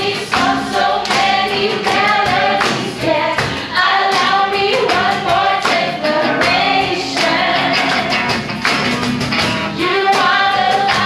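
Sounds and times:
group singing praise song: 0.0 - 8.5, 9.8 - 11.0
acoustic guitar: 0.0 - 11.0.

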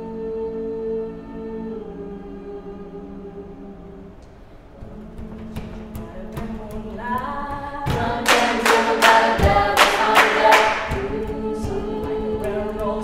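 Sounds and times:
female choir holding a chord: 0.0 - 13.0.

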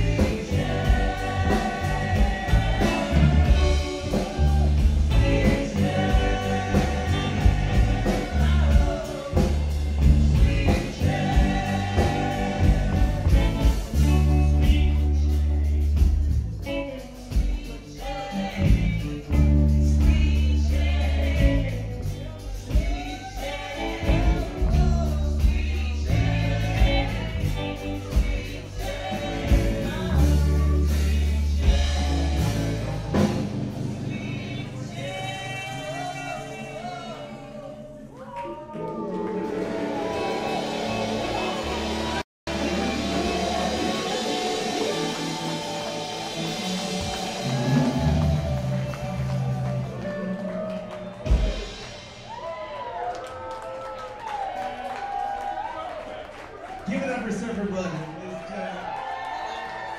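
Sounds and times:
held bass notes: 0.0 - 37.4, 39.1 - 52.4
person singing: 0.0 - 51.8
keyboard: 0.0 - 52.2
live band playing: 0.0 - 55.6
guitar: 0.0 - 55.7.

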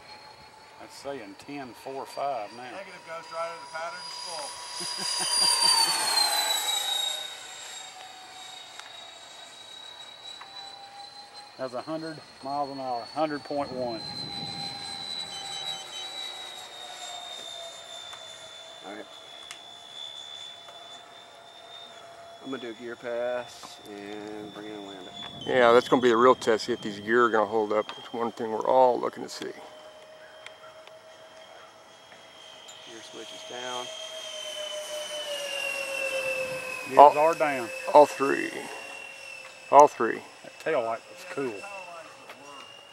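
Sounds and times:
model jet fan whine: 0.0 - 42.9
quick electronic beeps: 24.4 - 28.9.

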